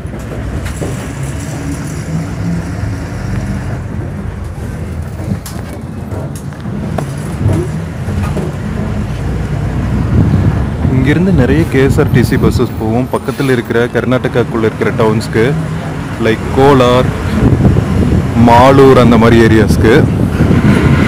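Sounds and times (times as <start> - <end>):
bus engine rumbling: 0.0 - 21.0
short knocks and rattles: 3.7 - 9.2.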